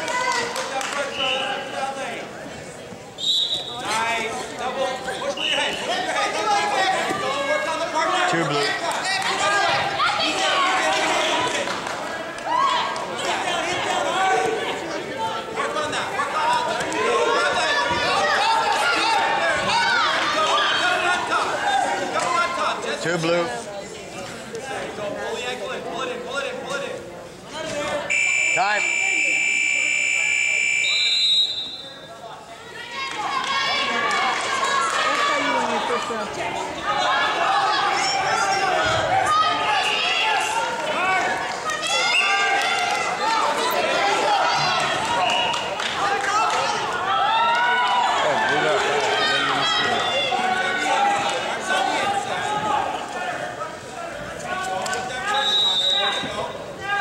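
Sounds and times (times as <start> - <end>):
many voices talking in a hall: 0.0 - 57.0
short high beep: 28.1 - 32.0.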